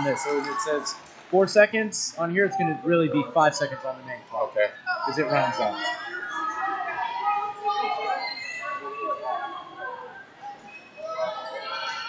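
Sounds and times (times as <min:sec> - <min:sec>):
distant overlapping voices: 0:00.0 - 0:12.0.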